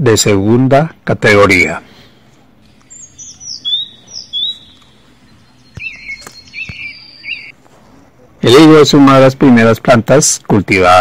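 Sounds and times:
bird chirping: 0:02.7 - 0:07.6.

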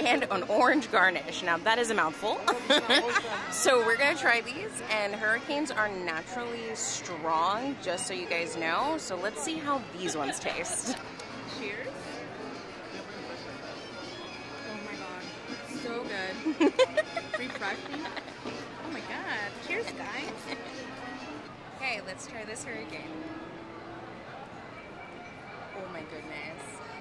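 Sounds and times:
diners chatting: 0:00.0 - 0:27.0
faint music: 0:00.0 - 0:27.0.

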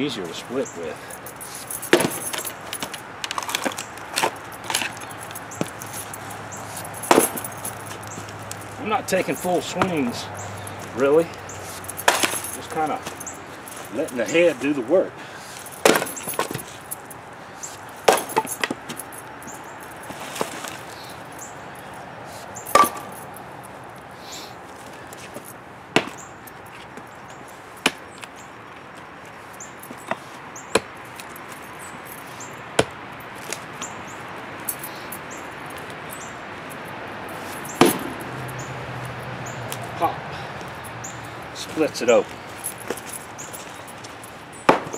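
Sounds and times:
axe chopping firewood: 0:01.9 - 0:05.0, 0:07.1 - 0:07.5, 0:12.0 - 0:13.2, 0:15.8 - 0:16.7, 0:18.0 - 0:18.9, 0:22.7 - 0:23.1, 0:25.9 - 0:26.2, 0:27.8 - 0:28.1, 0:30.7 - 0:30.9, 0:37.8 - 0:38.2, 0:44.6 - 0:44.9.

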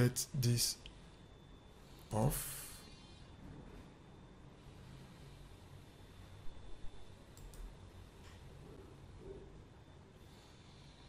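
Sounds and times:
computer mouse clicking: 0:07.3 - 0:08.4.

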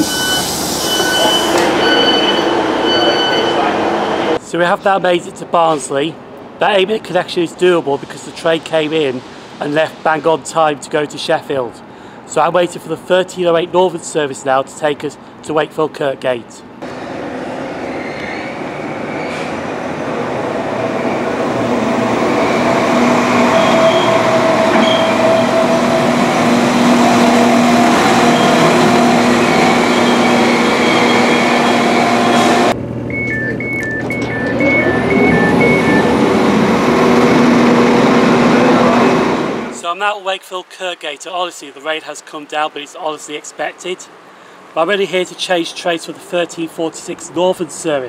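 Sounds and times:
rapid two-tone door warning beeping: 0:00.0 - 0:04.4, 0:23.4 - 0:25.6, 0:28.2 - 0:36.6
train engine running: 0:00.0 - 0:04.4, 0:18.6 - 0:39.8.

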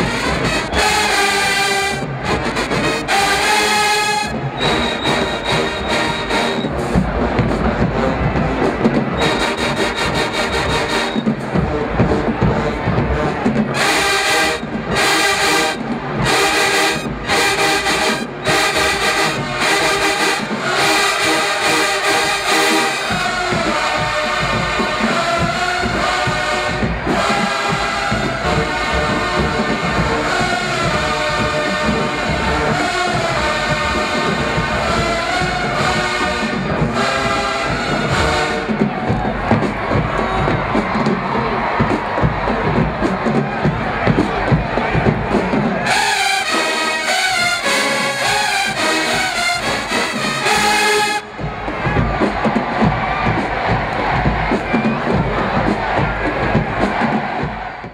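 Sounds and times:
crowd cheering and shouting: 0:00.0 - 0:57.9
marching band brass playing: 0:00.0 - 0:57.9.

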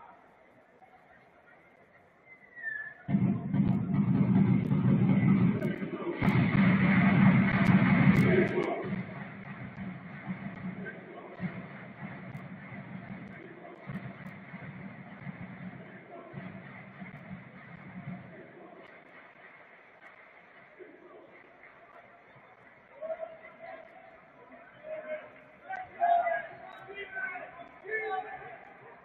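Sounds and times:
murmur of voices: 0:00.0 - 0:29.0
stadium crowd chanting: 0:00.0 - 0:29.0.

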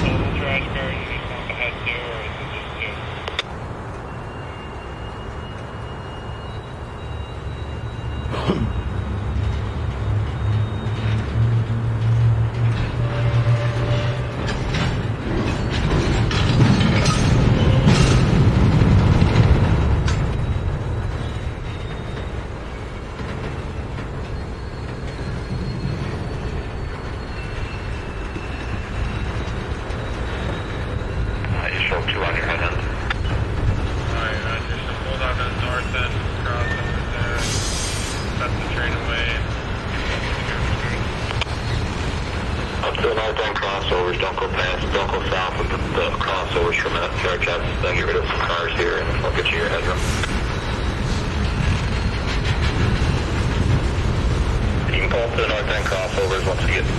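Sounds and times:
freight train wheels rumbling on track: 0:00.0 - 0:56.9.

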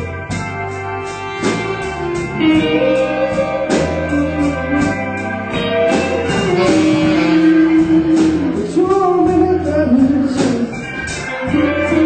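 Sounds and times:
blues band playing: 0:00.0 - 0:12.0.

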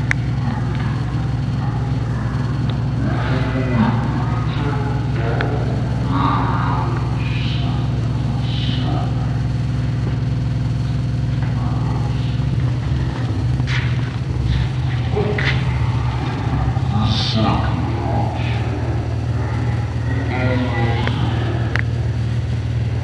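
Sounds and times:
faint voices talking: 0:00.0 - 0:23.0
low rumble: 0:00.0 - 0:23.0.

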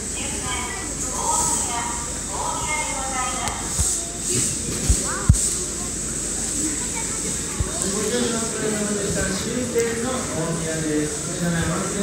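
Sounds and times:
voices talking: 0:00.1 - 0:12.0.

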